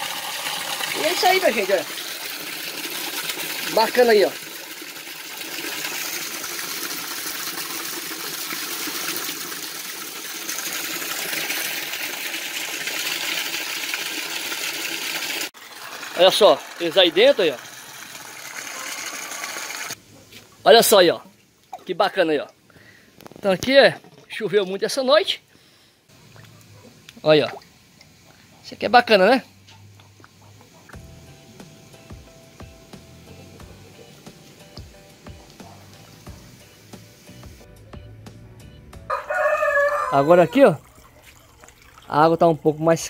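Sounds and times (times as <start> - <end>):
aquarium pump rushing water: 0.0 - 20.0, 27.2 - 31.0, 39.4 - 43.0
rooster crowing: 39.1 - 40.6.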